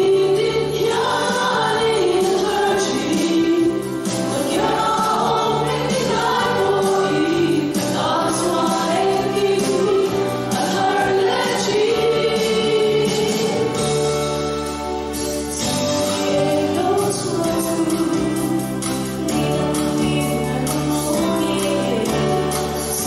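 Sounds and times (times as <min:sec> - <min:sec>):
women's choir singing amplified: 0:00.0 - 0:14.1, 0:15.5 - 0:23.0.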